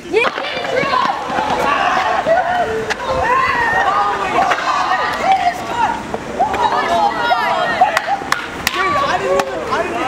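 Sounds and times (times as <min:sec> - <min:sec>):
young men whooping and cheering: 0:00.6 - 0:10.0.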